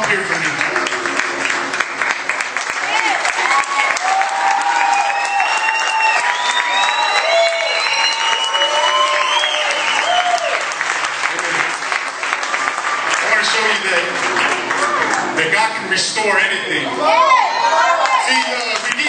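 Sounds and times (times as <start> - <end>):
audience applauding: 0.0 - 15.8, 17.2 - 19.0
cheers and whoops: 2.8 - 10.8, 17.0 - 18.6.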